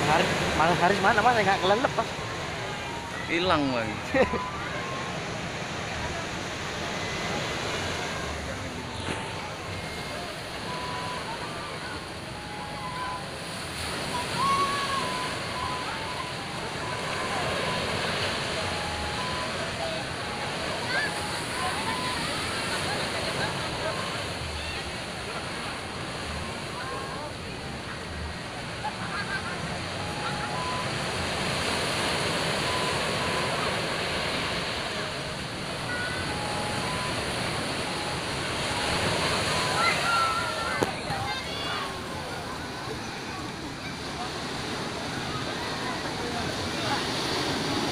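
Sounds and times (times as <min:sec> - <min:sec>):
sea surf washing over rocks: 0:00.0 - 0:27.6, 0:28.5 - 0:47.9.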